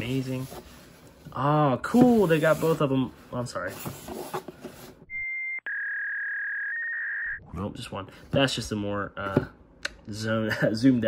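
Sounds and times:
electronic bleep tone: 5.1 - 7.4.

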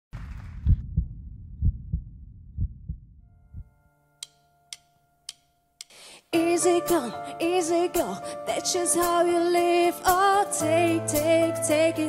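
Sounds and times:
heartbeat thuds: 0.2 - 3.7.

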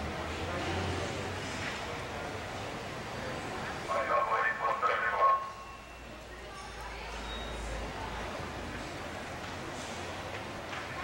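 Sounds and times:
venue background noise: 0.0 - 11.0
man calling over public address: 3.8 - 5.6.

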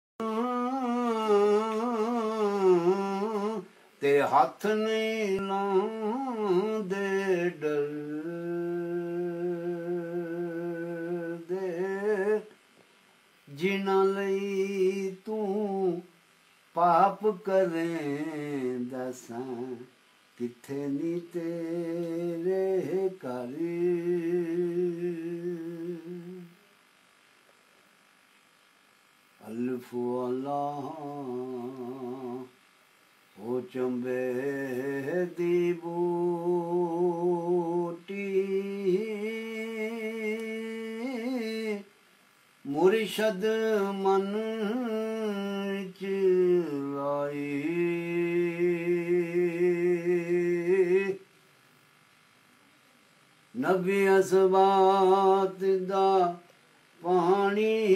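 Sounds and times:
man singing long held note: 0.2 - 12.5, 13.4 - 16.1, 16.7 - 26.7, 29.4 - 32.6, 33.4 - 41.9, 42.6 - 51.2, 53.5 - 57.9.

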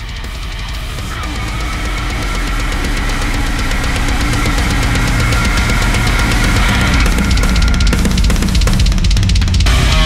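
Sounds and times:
distorted guitars: 0.0 - 10.0
fast dense drumming: 0.0 - 10.0.

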